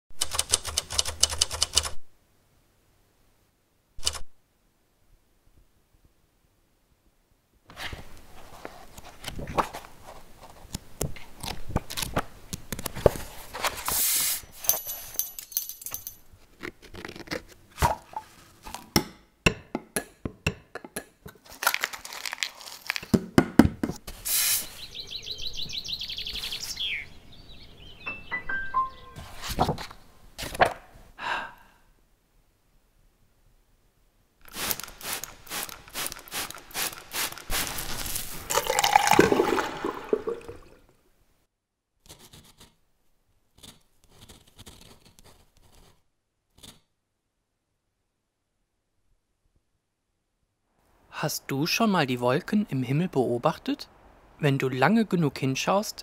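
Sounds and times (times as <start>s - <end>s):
typewriter keys clacking: 0.2s - 2.0s, 4.0s - 4.3s
sharp taps and knocks: 18.8s - 21.4s, 23.1s - 24.0s.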